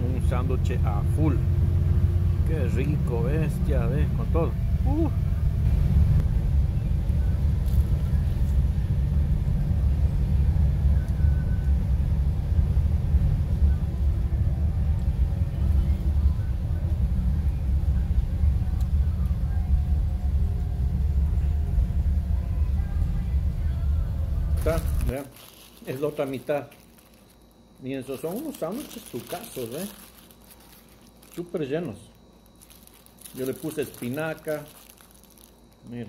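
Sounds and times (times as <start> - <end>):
bus engine rumbling: 0.0 - 26.4.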